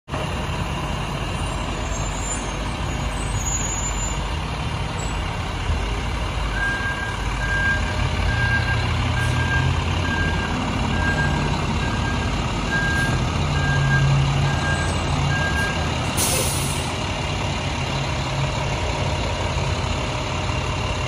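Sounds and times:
diesel engines rumbling: 0:00.1 - 0:21.0
reversing alarm beeping: 0:06.5 - 0:16.0.

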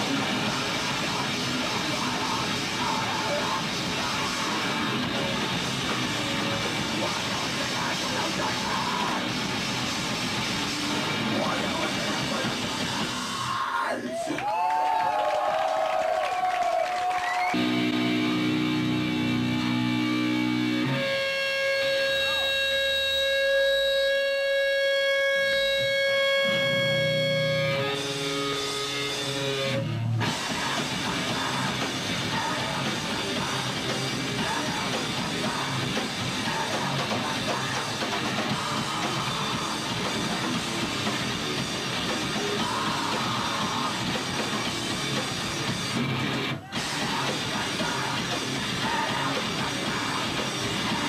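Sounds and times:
grindcore band playing: 0:00.0 - 0:13.6, 0:17.5 - 0:51.0
long held guitar notes: 0:17.5 - 0:51.0.

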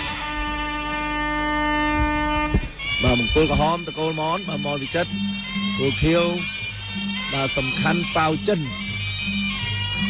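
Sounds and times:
reed oboe long note: 0:00.0 - 0:10.0.

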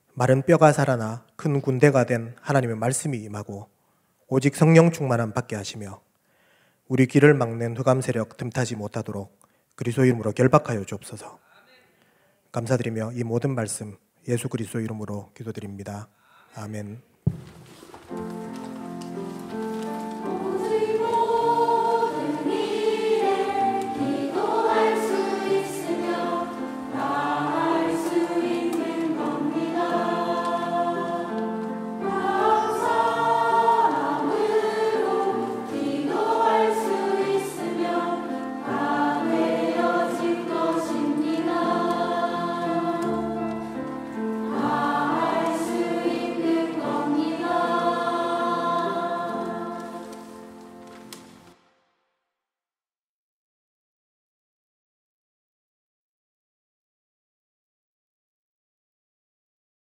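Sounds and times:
choir singing: 0:18.4 - 0:50.7.

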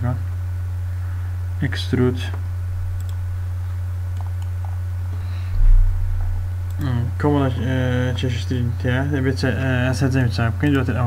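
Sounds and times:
low electrical hum: 0:00.0 - 0:11.0
computer mouse clicks: 0:03.0 - 0:03.2, 0:04.1 - 0:04.8.

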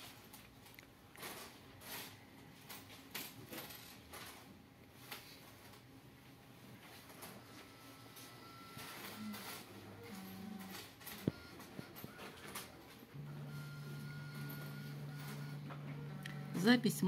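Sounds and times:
low machine hum: 0:06.1 - 0:17.0.

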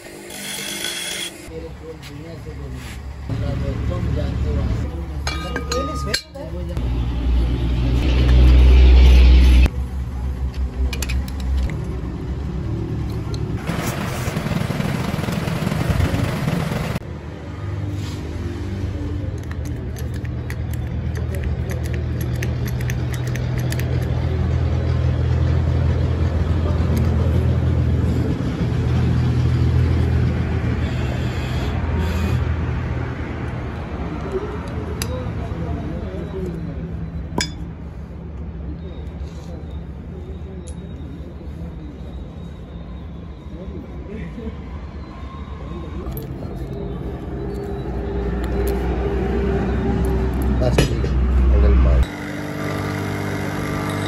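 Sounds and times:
light metal clinks: 0:05.2 - 0:06.5.

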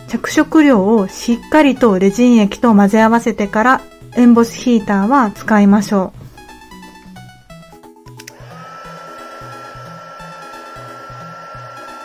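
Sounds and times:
keyboard-like background music: 0:00.0 - 0:12.0
heat gun blowing and whining: 0:08.2 - 0:12.0.

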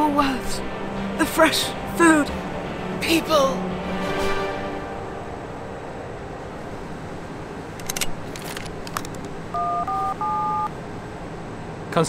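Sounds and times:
telephone keypad beeps: 0:09.6 - 0:10.7.

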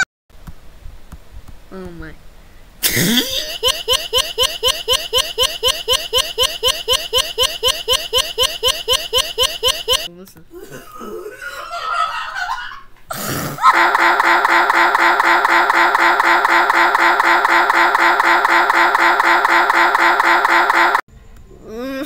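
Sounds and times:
harsh looping computer stutter: 0:03.2 - 0:10.1, 0:13.7 - 0:21.0.

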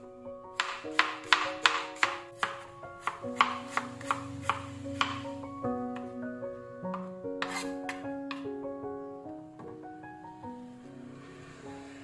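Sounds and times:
knife chopping on cutting board: 0:00.6 - 0:05.3, 0:07.4 - 0:08.4.

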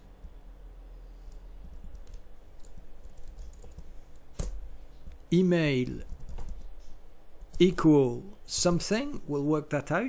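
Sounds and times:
typing on computer keyboard: 0:01.3 - 0:05.2, 0:05.8 - 0:07.8.

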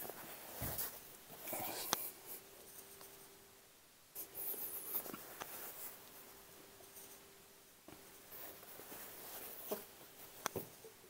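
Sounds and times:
body and bare feet on exercise mat: 0:00.0 - 0:01.6.

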